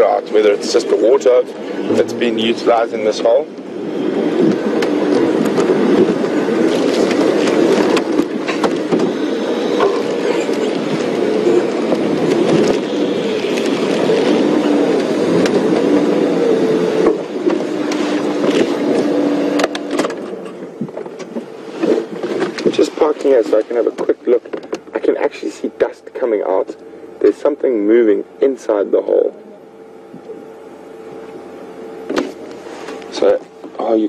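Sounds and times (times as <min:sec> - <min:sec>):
vehicle engine driving slowly: 0:00.0 - 0:34.0.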